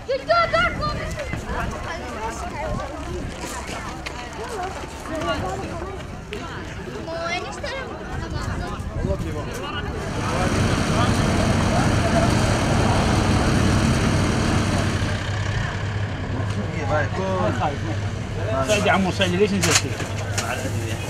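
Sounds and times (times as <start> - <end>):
faint background voices: 0.0 - 21.0
vehicle engine humming: 9.9 - 21.0.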